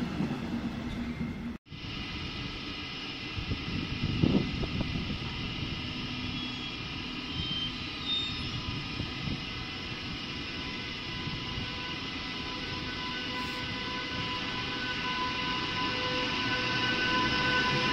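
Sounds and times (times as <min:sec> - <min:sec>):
electric locomotive drone: 0:00.0 - 0:17.9
low train rumble: 0:00.0 - 0:17.9.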